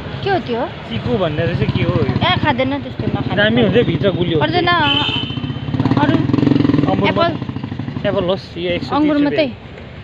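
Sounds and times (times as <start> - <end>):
voices: 0.2 - 9.6.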